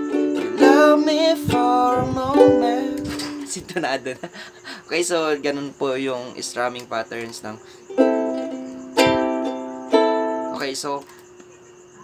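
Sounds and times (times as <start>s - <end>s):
ukulele chords strummed: 0.0s - 3.6s, 7.9s - 10.8s.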